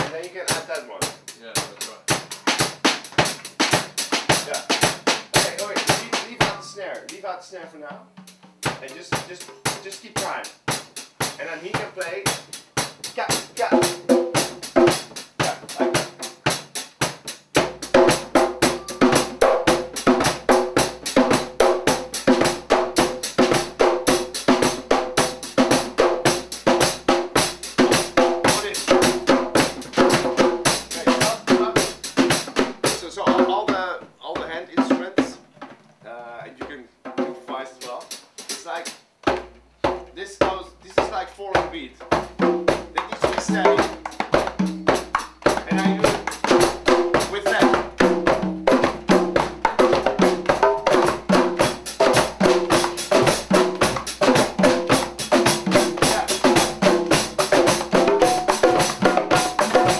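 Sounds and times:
deep low drum beats: 0.0s - 6.8s, 8.0s - 35.4s, 36.6s - 59.9s
percussion ensemble groove: 0.0s - 59.9s.

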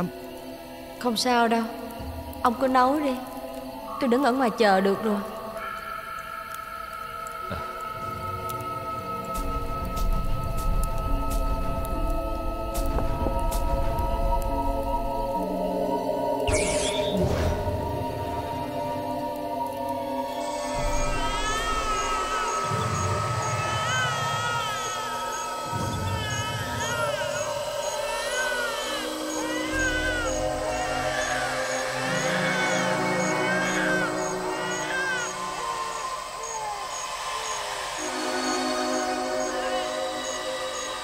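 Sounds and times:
droning synth film score: 0.0s - 41.0s
wavering wail-like voice: 20.1s - 41.0s.

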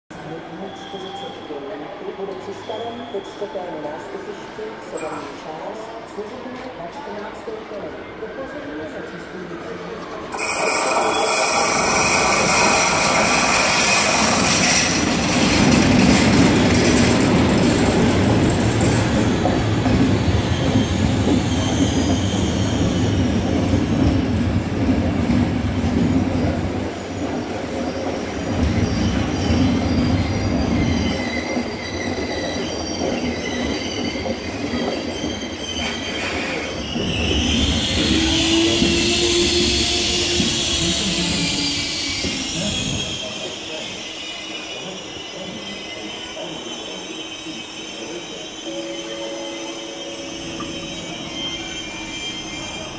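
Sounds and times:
train rumbling past: 10.2s - 46.5s
high-pitched wheel squeal: 10.3s - 15.3s, 28.7s - 52.9s.

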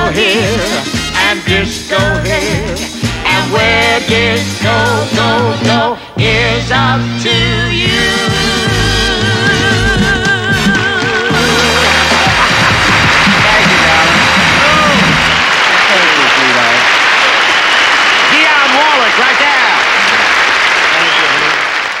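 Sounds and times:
audience applauding and cheering: 11.3s - 22.0s.

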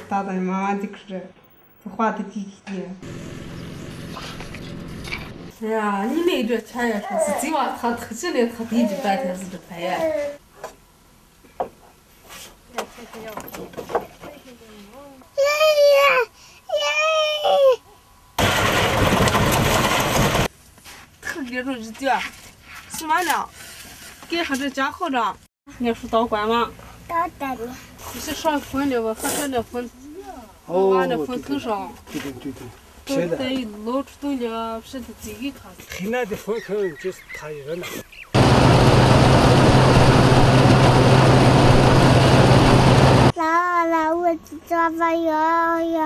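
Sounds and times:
threshing machine running: 3.0s - 5.6s, 18.4s - 20.5s, 38.4s - 43.3s
small boy calling out: 15.1s - 17.9s.

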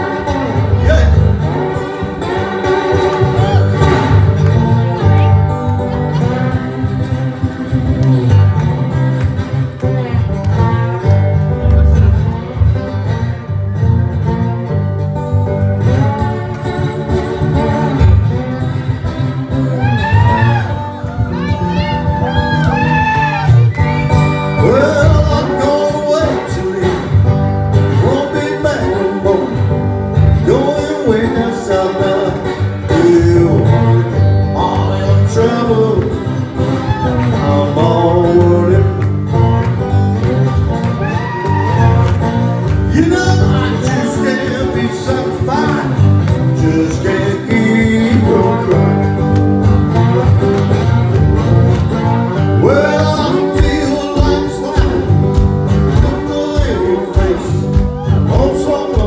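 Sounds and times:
acoustic guitar playing blues: 0.0s - 59.0s
man singing into a microphone: 24.4s - 40.0s, 42.8s - 49.3s, 52.5s - 59.0s.

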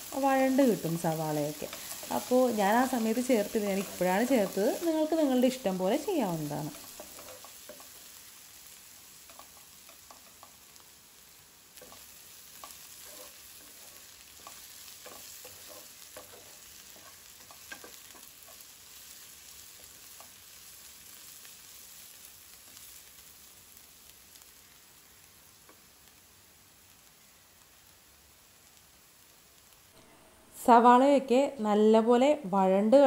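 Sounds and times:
onions sizzling in a wok: 0.0s - 33.0s
wooden spatula tapping: 2.9s - 4.6s, 6.7s - 8.0s.

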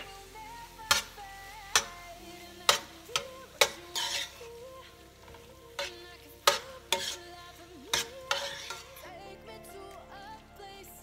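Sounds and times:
vegetables sizzling: 0.0s - 9.4s
spoon scraping pan: 0.9s - 2.0s, 2.6s - 4.6s, 5.2s - 9.1s
spoon clinking against pan: 1.7s - 2.0s, 2.7s - 4.6s, 5.3s - 7.3s, 7.9s - 9.0s.

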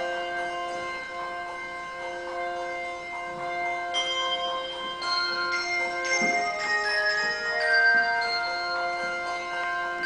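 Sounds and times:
handbell choir ringing chords: 0.0s - 10.0s.

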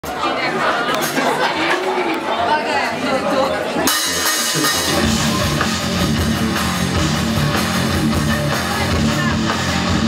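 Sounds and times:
audience chatter: 0.0s - 10.0s
rock band playing: 3.7s - 10.0s.

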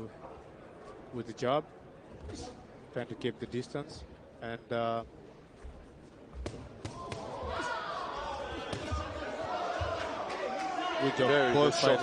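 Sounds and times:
crowd shouting: 6.9s - 12.0s.

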